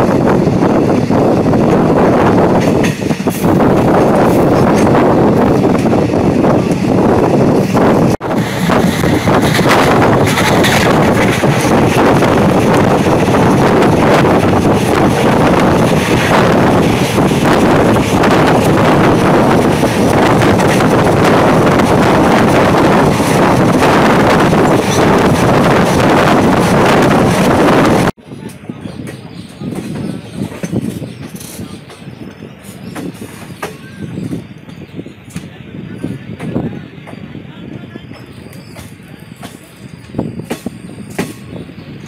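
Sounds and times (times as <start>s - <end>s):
train running on track: 0.0s - 42.0s
wind rushing over microphone: 0.0s - 42.0s.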